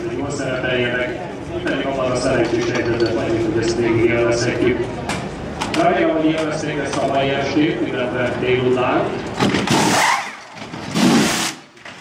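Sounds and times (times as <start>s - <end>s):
pneumatic wheel guns spinning: 9.4s - 12.0s.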